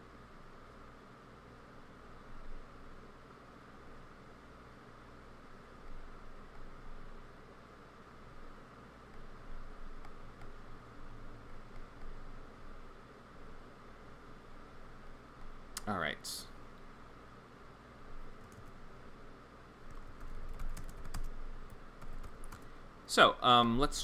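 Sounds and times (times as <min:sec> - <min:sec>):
microphone hiss and hum: 0:00.0 - 0:24.0.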